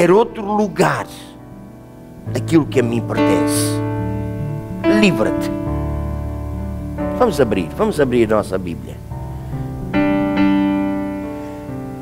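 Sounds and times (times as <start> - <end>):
keyboard chords: 0.0 - 12.0.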